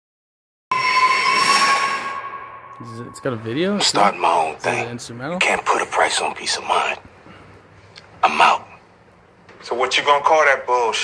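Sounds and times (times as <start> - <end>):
high-pitched metallic squeal: 0.7 - 4.8.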